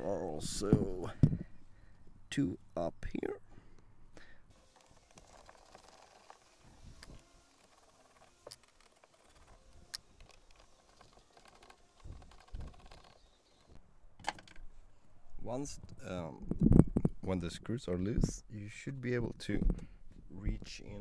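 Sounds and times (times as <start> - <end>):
screwdriver handling sounds: 4.5 - 13.8.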